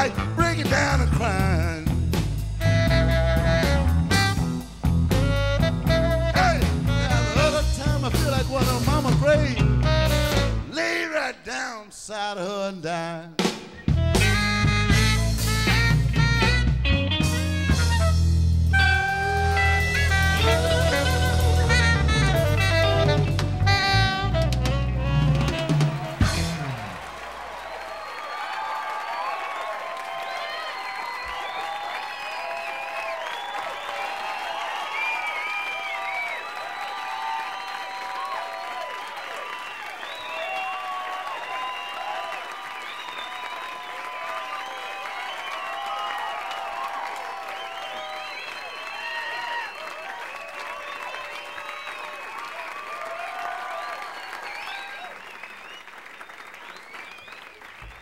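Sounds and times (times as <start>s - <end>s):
audience applauding and cheering: 13.8s - 58.0s.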